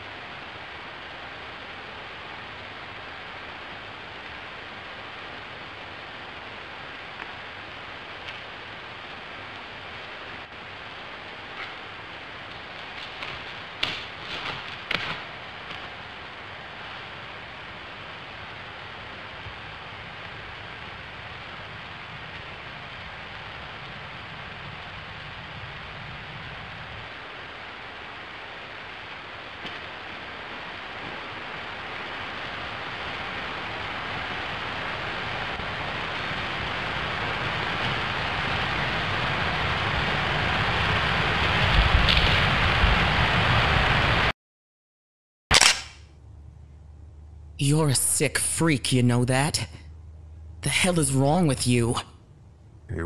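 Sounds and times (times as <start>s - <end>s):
hiss-like static: 0.0s - 44.3s.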